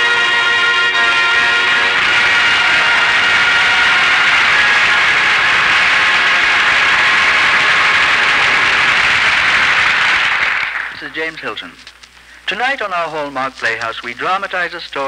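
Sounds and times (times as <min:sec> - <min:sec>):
theme music: 0:00.0 - 0:11.0
audience applauding: 0:00.9 - 0:11.6.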